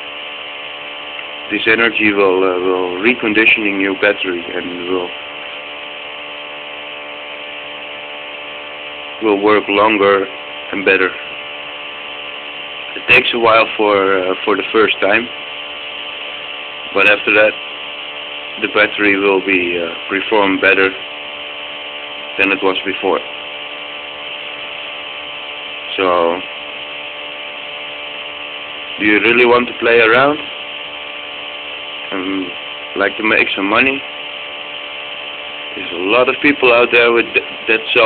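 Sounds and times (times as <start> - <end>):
motor buzzing steadily: 0.0 - 38.0.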